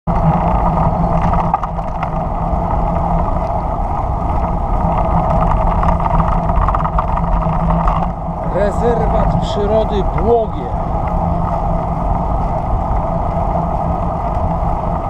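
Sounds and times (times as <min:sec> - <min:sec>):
tyre noise on asphalt: 0:00.1 - 0:15.0
wind on microphone: 0:00.1 - 0:15.0.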